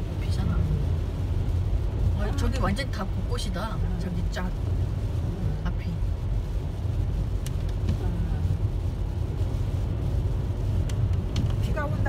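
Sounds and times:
engine and tyre rumble: 0.0 - 12.0.

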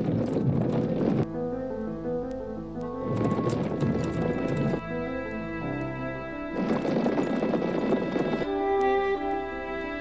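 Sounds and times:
music: 0.8 - 10.0.

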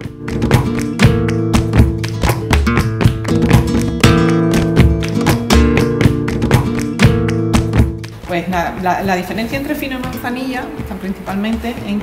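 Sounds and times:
flamenco acoustic guitar: 0.0 - 11.8.

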